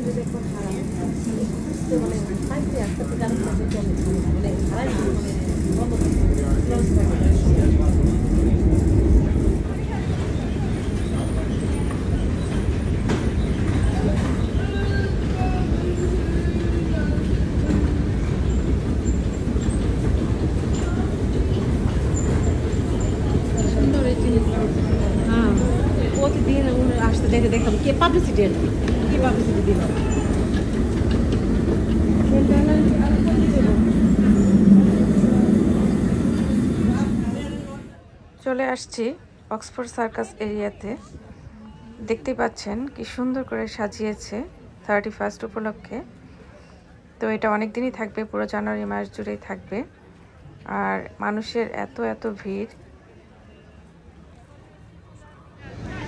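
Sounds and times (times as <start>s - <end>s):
underground train rumble: 0.0s - 56.0s.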